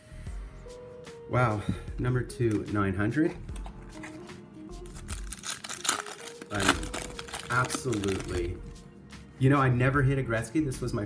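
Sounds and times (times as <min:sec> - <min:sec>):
quiet background music: 0:00.0 - 0:11.0
foil pack crinkling and tearing: 0:04.8 - 0:08.6.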